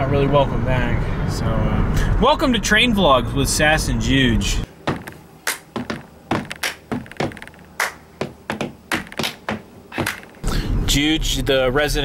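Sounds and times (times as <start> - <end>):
hand claps and taps: 4.9 - 10.4.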